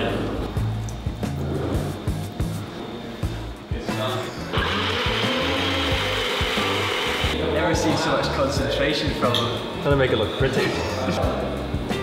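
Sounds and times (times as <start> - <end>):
blender running: 4.5 - 7.4.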